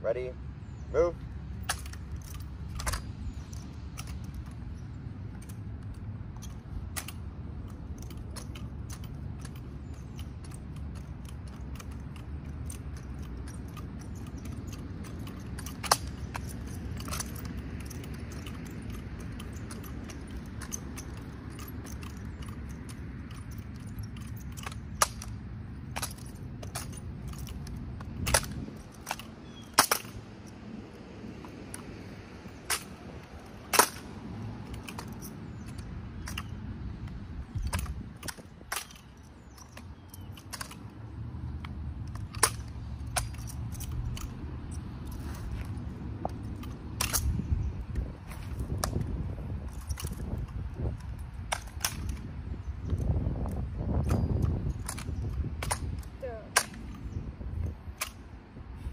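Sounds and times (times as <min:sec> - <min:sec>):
steady low rumble: 0:00.0 - 0:58.9
rifles clicking and slapping: 0:01.0 - 0:58.9.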